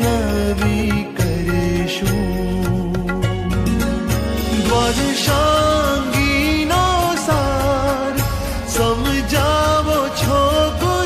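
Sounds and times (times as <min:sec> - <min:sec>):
chant-like devotional melody: 0:00.0 - 0:11.0
rhythmic percussion: 0:00.0 - 0:11.0.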